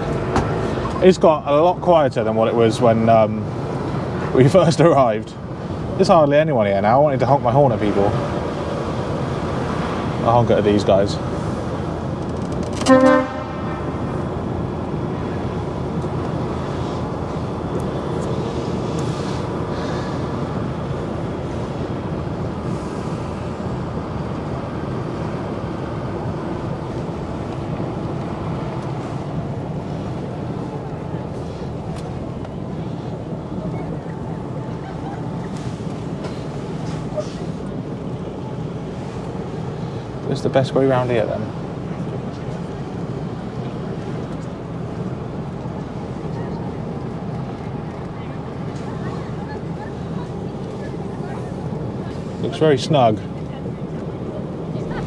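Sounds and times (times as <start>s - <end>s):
truck engine running: 0.0s - 55.0s
lorry horn toot: 12.8s - 13.9s.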